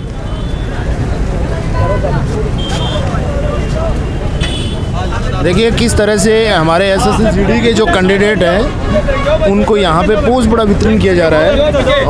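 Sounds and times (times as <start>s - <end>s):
crowd of young men chattering: 0.0s - 12.0s.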